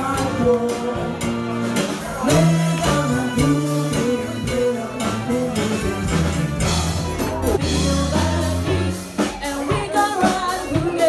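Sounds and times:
guitar: 0.0s - 11.0s
soul band playing: 0.0s - 11.0s.

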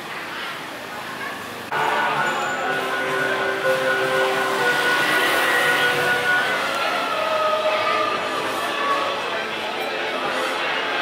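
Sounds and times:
busy street traffic: 0.0s - 11.0s.

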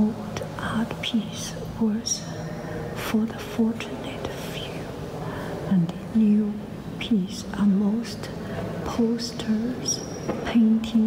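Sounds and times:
people whispering: 0.3s - 11.0s.

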